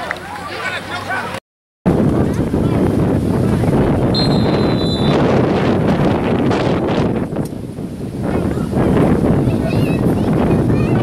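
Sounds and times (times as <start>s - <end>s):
wind buffeting microphone: 1.9s - 11.0s
referee's whistle blast: 4.2s - 5.3s.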